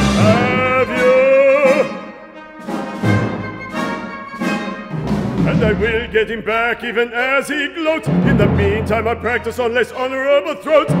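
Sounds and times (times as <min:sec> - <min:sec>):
orchestra playing: 0:00.0 - 0:06.9, 0:07.8 - 0:11.0.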